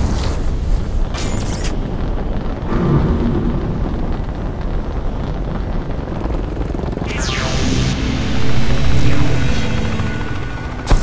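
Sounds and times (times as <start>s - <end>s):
short low hum: 7.1s - 11.0s.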